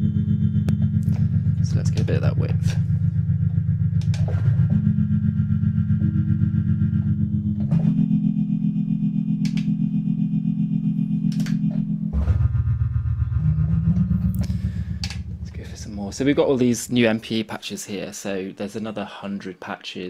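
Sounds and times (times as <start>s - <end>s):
buzzy synthesizer chord: 0.0s - 17.4s
synthesizer button clicks: 4.0s - 4.4s, 9.4s - 9.8s, 11.3s - 11.9s.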